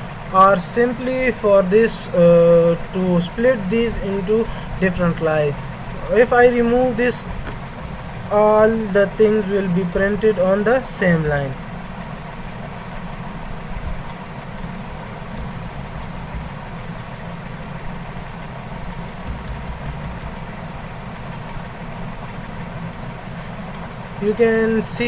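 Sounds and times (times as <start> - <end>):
low background rumble and hiss: 0.0 - 25.0
computer keys clicking: 15.3 - 16.6, 18.9 - 20.5.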